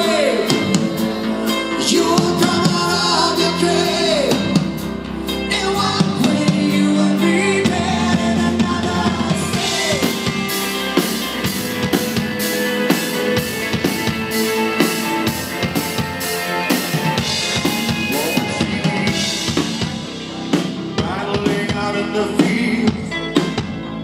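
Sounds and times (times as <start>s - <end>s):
drums and cymbals beat: 0.0s - 23.9s
live rock band playing: 0.0s - 24.0s.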